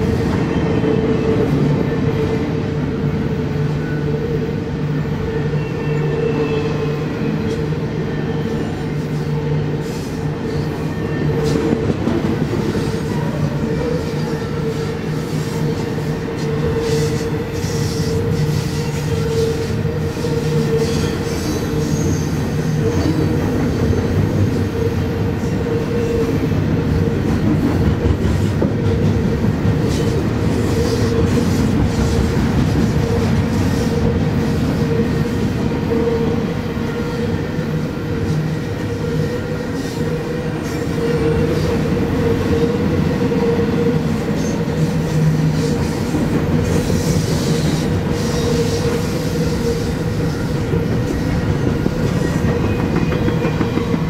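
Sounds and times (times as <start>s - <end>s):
freight train wheels rumbling on rail: 0.0s - 54.0s.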